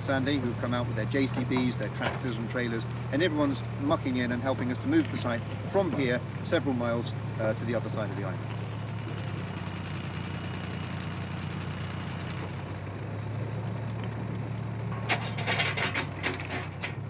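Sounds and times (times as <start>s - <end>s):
diesel engine low rumble: 0.0s - 17.0s
clattering knocks: 1.3s - 2.4s, 14.9s - 17.0s.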